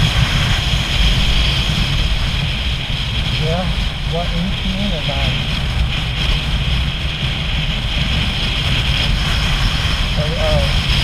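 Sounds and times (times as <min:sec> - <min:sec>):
motorcycle engine drone: 0:00.0 - 0:11.0
wind buffeting microphone: 0:00.0 - 0:11.0.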